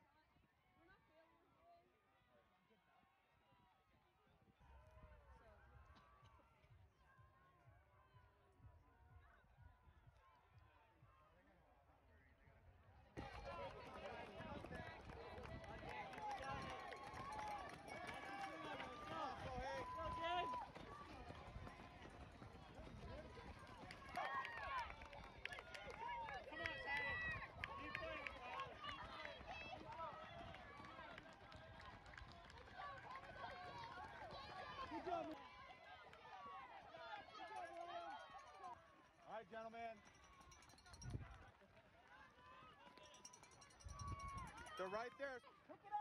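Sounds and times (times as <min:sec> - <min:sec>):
spectators shouting and cheering: 0:13.2 - 0:21.3.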